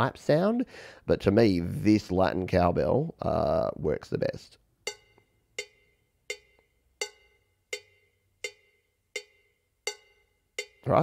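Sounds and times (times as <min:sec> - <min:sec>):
cowbell strikes: 0:04.9 - 0:11.0.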